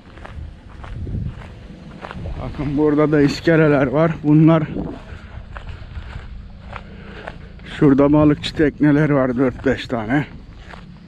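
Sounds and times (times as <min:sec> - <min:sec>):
footsteps on dirt: 0:00.0 - 0:11.0
low rumble: 0:00.0 - 0:11.0.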